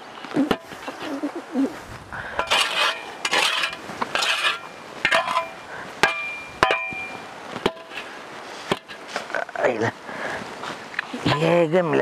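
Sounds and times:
hand tool scraping metal mesh sieve: 2.4s - 7.1s.

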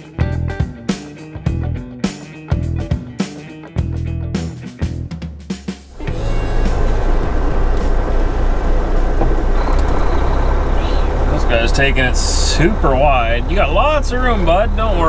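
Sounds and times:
background music with beat: 0.0s - 8.2s
diesel truck engine running: 5.9s - 15.0s
road noise: 5.9s - 15.0s.

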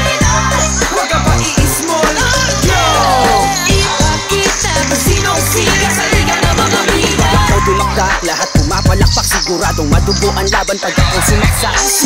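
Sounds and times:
deep bass line: 0.0s - 11.8s
rapping over a beat: 0.0s - 12.0s.

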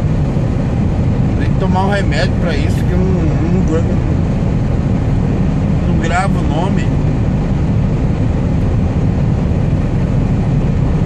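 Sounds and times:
diesel truck engine drone: 0.0s - 11.0s
road noise: 0.0s - 11.0s.

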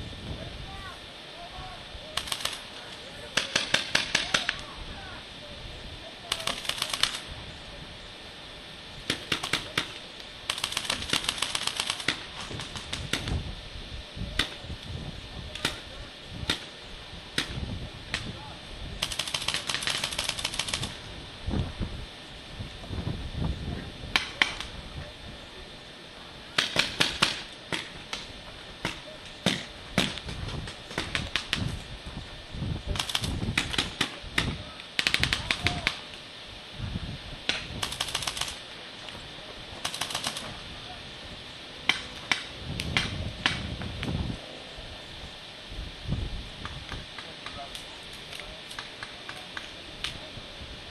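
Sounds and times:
paintball marker firing: 3.4s - 4.7s, 6.3s - 7.2s, 9.1s - 13.4s, 26.6s - 31.7s, 33.0s - 36.0s, 41.9s - 43.7s
low rumble on microphone: 20.8s - 26.4s, 28.0s - 35.9s, 36.6s - 37.9s, 40.5s - 47.2s.

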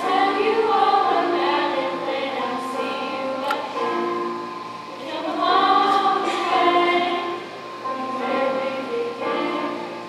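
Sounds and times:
mixed chorus singing held notes: 0.0s - 10.0s.

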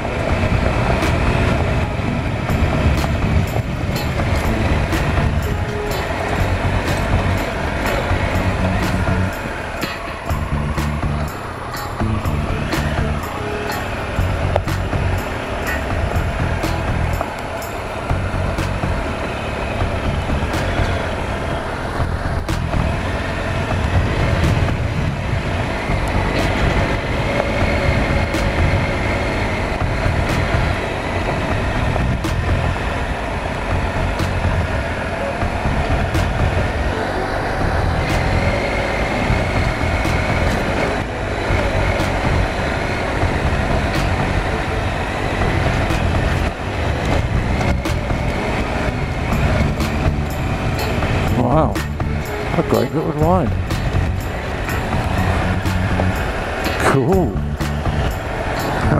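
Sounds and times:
motorcycle engine rumbling: 0.0s - 58.9s.

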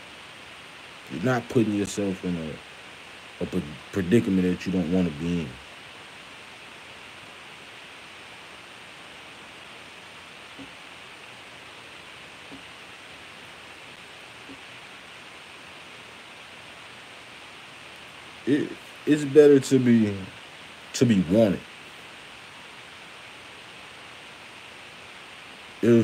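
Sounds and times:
room tone hiss: 0.0s - 26.0s.

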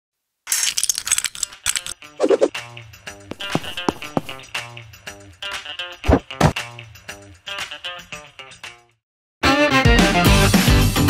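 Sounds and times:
plastic toy bricks clicking: 0.5s - 2.0s.

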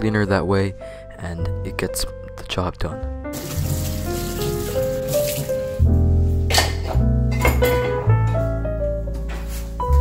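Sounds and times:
background music of held notes: 0.0s - 10.0s
tap water running into sink: 3.3s - 5.8s.

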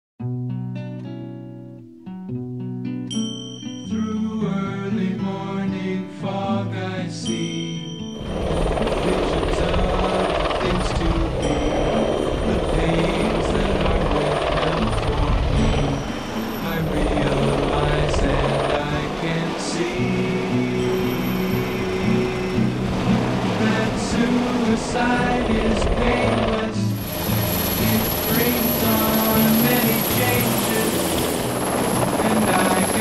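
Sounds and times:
acoustic guitar music: 0.2s - 33.0s
loud helicopter noise: 8.2s - 33.0s.

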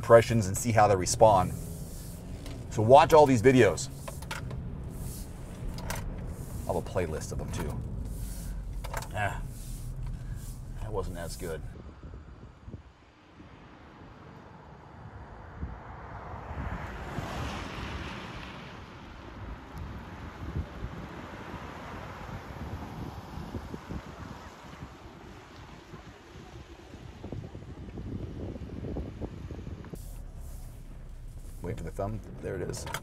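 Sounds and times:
tyres hissing on wet road: 0.1s - 11.7s, 17.1s - 19.4s, 30.0s - 32.3s
wind buffeting microphone: 21.9s - 32.8s.

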